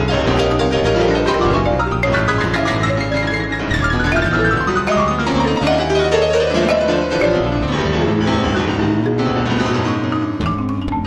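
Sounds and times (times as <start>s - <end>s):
jazz trio playing: 0.0s - 11.0s.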